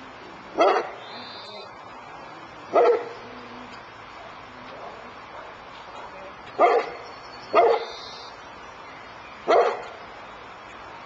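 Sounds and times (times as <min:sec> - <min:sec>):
dog barking: 0:00.6 - 0:01.0, 0:02.7 - 0:03.2, 0:04.2 - 0:07.9, 0:09.5 - 0:10.0.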